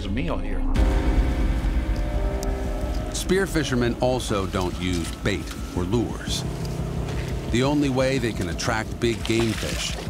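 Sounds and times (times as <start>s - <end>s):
outboard motor running: 2.2s - 10.0s.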